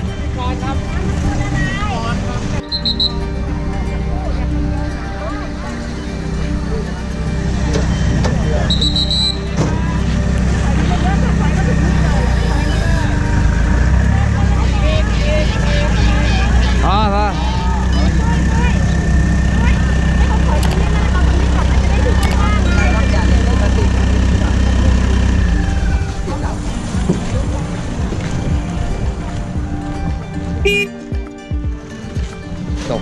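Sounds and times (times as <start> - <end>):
vehicle engine running: 0.0 - 33.0
people talking: 3.8 - 28.6.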